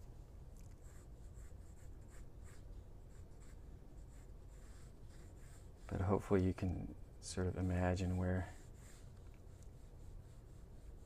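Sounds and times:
pencil strokes on paper: 0:00.8 - 0:11.0.

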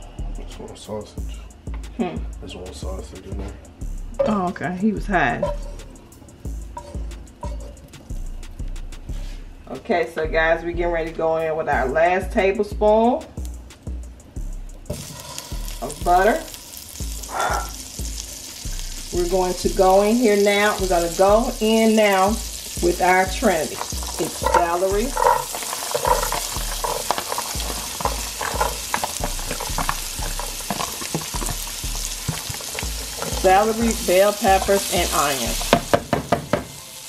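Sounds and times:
background music with steady beat: 0:00.0 - 0:37.0
butter sizzling in frying pan: 0:14.9 - 0:37.0.

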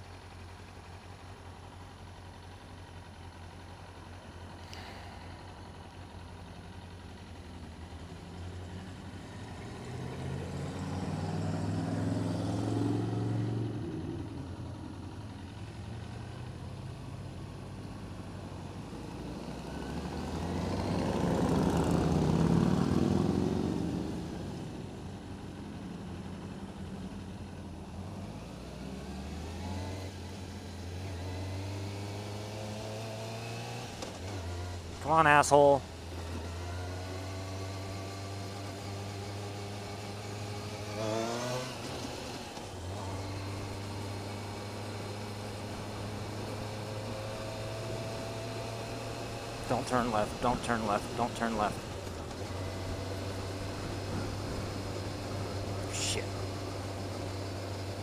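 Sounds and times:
motorcycles passing: 0:08.3 - 0:17.2, 0:18.3 - 0:58.0
motorcycle engine running: 0:35.8 - 0:58.0.

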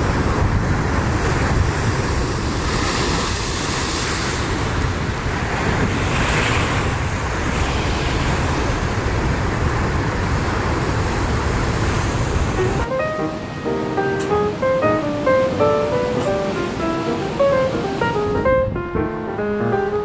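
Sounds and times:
wind buffeting microphone: 0:00.0 - 0:12.9, 0:14.3 - 0:19.3
heavy surf crashing on rocks: 0:00.0 - 0:20.0.

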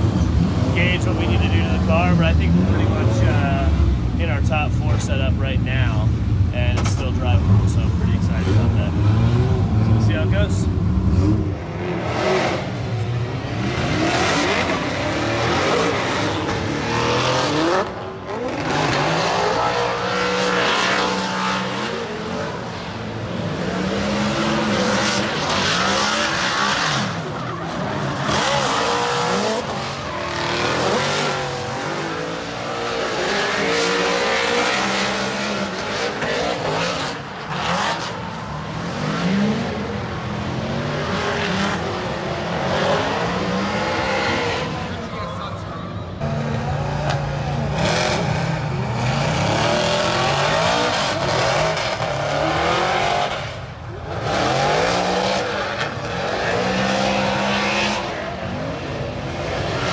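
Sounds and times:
car engines revving high: 0:00.0 - 0:59.9.

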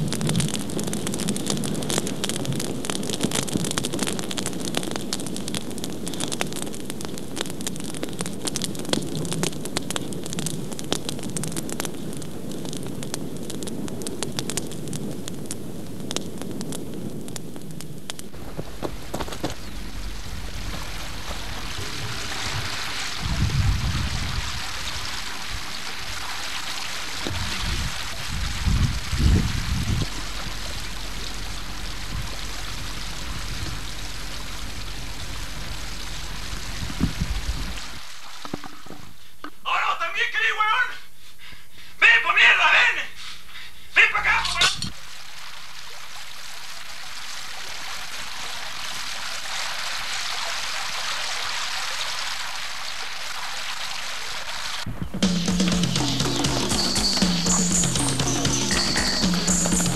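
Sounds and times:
open fire crackling: 0:00.0 - 0:59.9
low rumble: 0:18.2 - 0:25.7, 0:27.3 - 0:38.0
low rumbling thumps: 0:18.3 - 0:24.6, 0:27.3 - 0:37.9
river rushing: 0:18.3 - 0:38.4.

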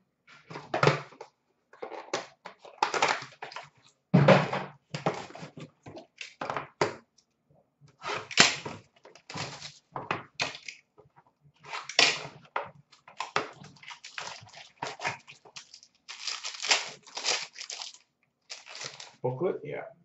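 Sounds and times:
packaging rustles and scrapes: 0:09.2 - 0:09.8, 0:13.0 - 0:19.2.

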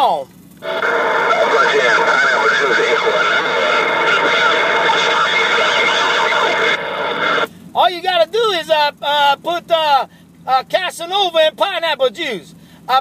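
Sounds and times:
distorted radio voices: 0:00.6 - 0:07.5
radio static: 0:00.6 - 0:07.5
radio whistles: 0:00.6 - 0:07.5.

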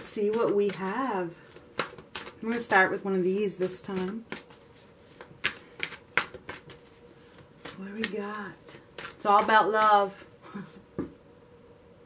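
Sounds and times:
cards being shuffled: 0:00.0 - 0:02.8, 0:03.6 - 0:10.3.

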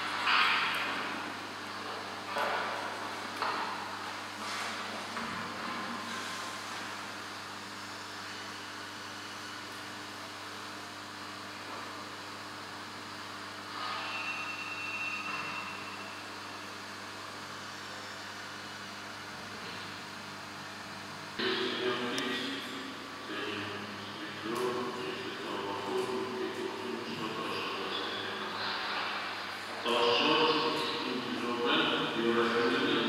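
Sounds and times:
low electrical hum: 0:00.0 - 0:33.0.

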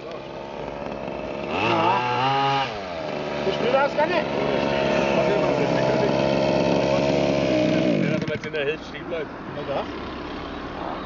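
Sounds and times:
two-stroke engine running: 0:00.0 - 0:11.0.

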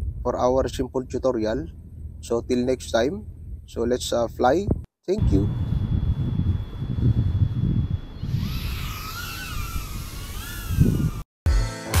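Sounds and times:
wind rumbling on microphone: 0:00.0 - 0:11.3
quadcopter motors whining: 0:05.2 - 0:11.3.

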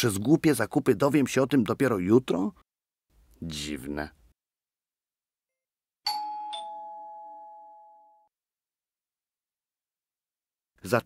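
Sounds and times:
two-tone doorbell chime: 0:06.1 - 0:08.3.

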